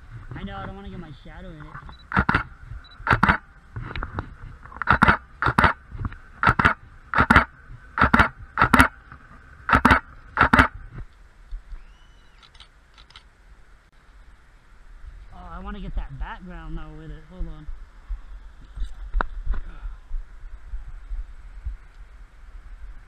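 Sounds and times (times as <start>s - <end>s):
camera shutter clicks: 3.0s - 3.4s, 4.8s - 5.8s, 6.4s - 8.9s, 9.7s - 10.7s, 12.4s - 13.3s.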